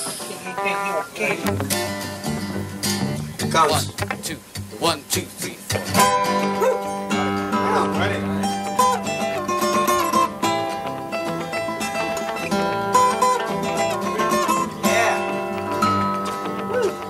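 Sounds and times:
acoustic guitar picking: 0:00.0 - 0:17.0.

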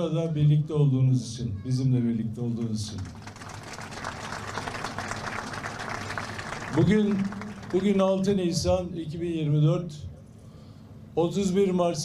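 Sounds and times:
audience applauding: 0:03.0 - 0:08.0.

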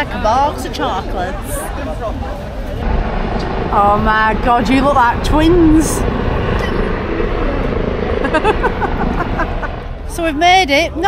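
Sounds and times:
rumbling background noise: 0:00.0 - 0:11.0.

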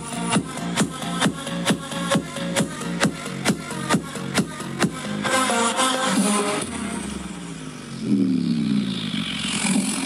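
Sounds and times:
electronic music with deep bass: 0:00.0 - 0:10.0
growling synth tone sweeping down: 0:06.8 - 0:10.0.

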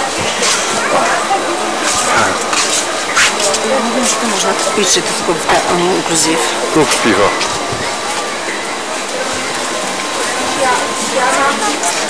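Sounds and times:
people talking: 0:00.0 - 0:12.0.

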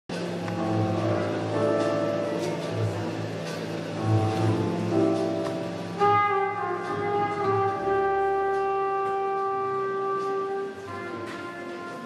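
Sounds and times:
wind instrument holding long note: 0:05.8 - 0:12.0.

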